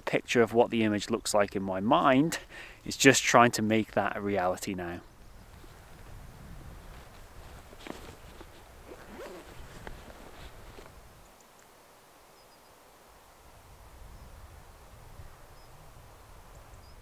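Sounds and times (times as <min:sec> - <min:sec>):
backpack rustling: 0:05.5 - 0:11.0
zip: 0:06.8 - 0:11.0.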